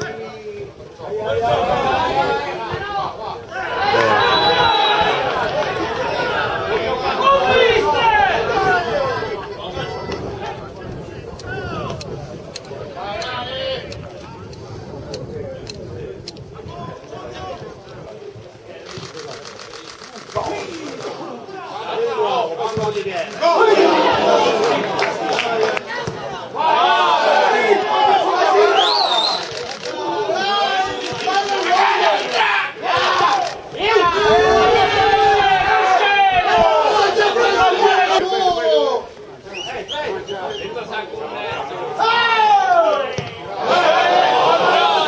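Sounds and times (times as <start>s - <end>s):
crowd noise: 0.0s - 45.0s.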